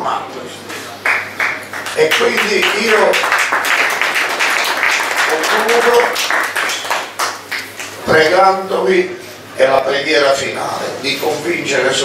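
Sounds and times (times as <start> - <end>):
audience applause: 1.0 - 8.0.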